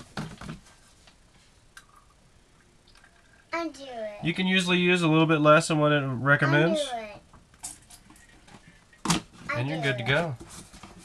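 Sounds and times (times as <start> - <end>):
faint rustles and clicks of handling: 0.0 - 2.0, 7.3 - 11.0
person speaking: 5.7 - 7.1.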